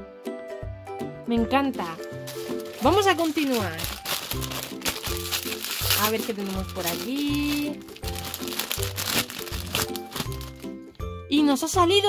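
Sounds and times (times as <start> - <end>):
foil packet crinkling: 2.0 - 10.8.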